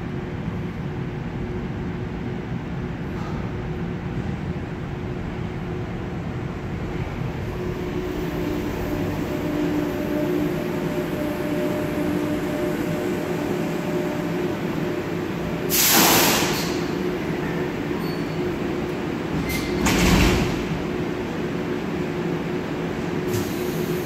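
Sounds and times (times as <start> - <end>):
railway car rumble: 0.0 - 24.0
loud hiss: 15.7 - 16.9.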